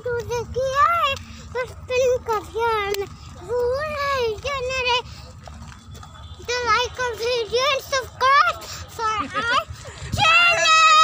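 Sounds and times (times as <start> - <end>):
low steady rumble: 0.0 - 11.0
children calling out sing-song: 6.4 - 11.0.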